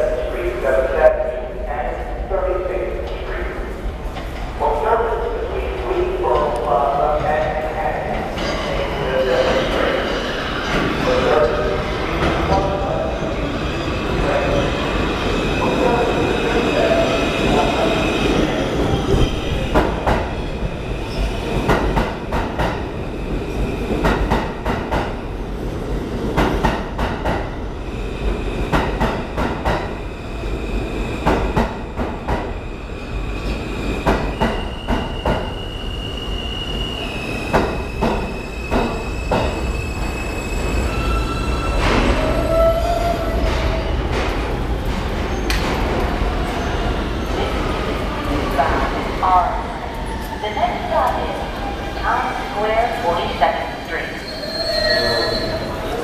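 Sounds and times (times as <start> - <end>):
subway train rumbling past: 0.0 - 56.0.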